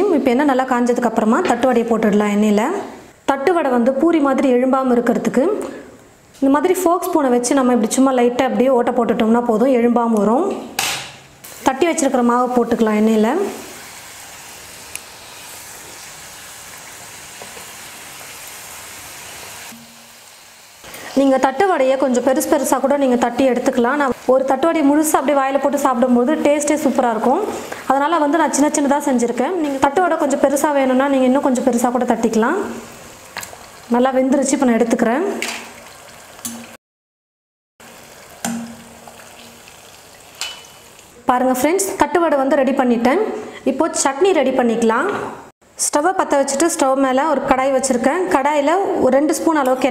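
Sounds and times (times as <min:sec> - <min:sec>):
food deep-frying in oil: 0:11.4 - 0:36.8, 0:37.8 - 0:42.1
skimmer knocking on pan: 0:38.4 - 0:39.6.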